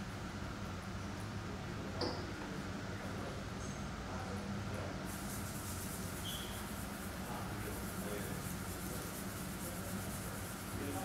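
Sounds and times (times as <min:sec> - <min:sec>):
steady low hum: 0:00.0 - 0:11.0
sponge scrubbing stone: 0:05.4 - 0:11.0.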